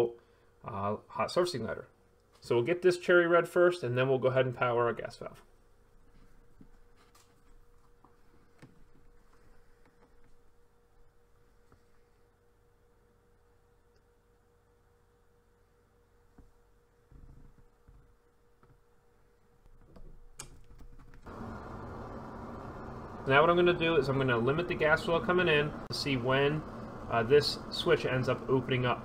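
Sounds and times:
burner burning with rushing sound: 21.2 - 29.0
faint steady tonal hum: 21.3 - 29.0.

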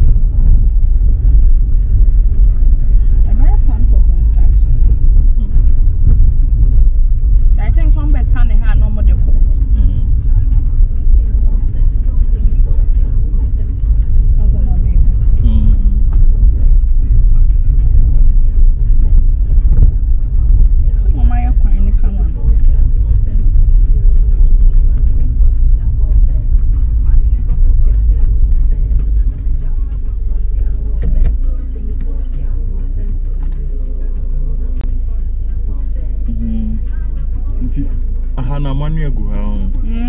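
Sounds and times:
tyres and engine rumbling: 0.0 - 40.0.

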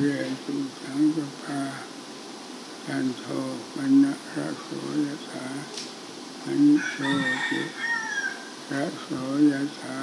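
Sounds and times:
man speaking slowly: 0.0 - 2.0, 2.8 - 5.8, 6.4 - 7.8, 8.7 - 10.0
rooster crowing: 6.7 - 8.6.

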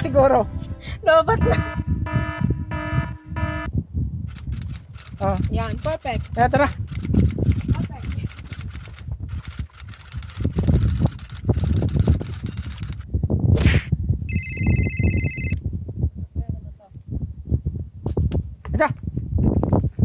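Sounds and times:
wind rumbling on microphone: 0.0 - 20.0
high ringing tone: 1.3 - 3.7, 14.3 - 15.6.

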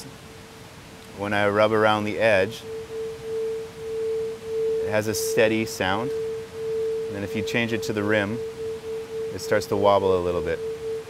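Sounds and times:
crystal singing bowl tone: 1.2 - 11.0.

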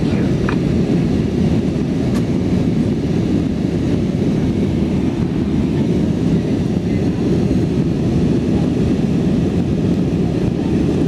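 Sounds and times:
airliner cabin engine roar: 0.0 - 11.0.

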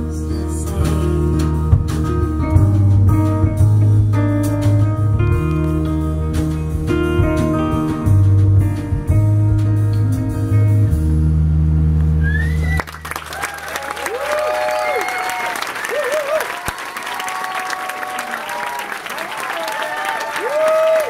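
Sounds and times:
audience whoops and cheers: 12.2 - 21.0
audience applause: 12.6 - 21.0.

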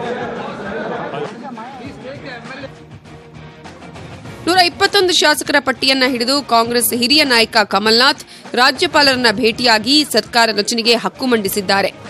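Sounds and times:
murmur of overlapping voices: 0.0 - 1.9.

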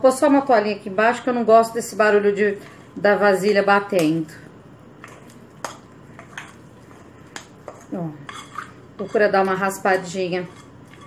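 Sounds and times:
utensil scraping dough in bowl: 5.0 - 11.0.

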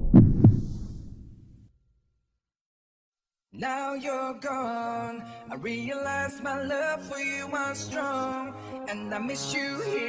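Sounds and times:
deep heartbeat-like thuds: 0.0 - 1.6.

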